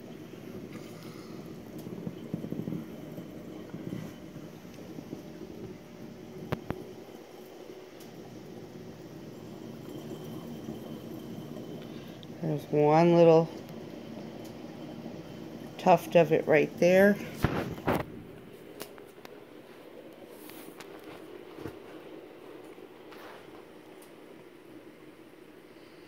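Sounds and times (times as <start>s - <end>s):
aquarium pumps humming: 0.0s - 26.0s.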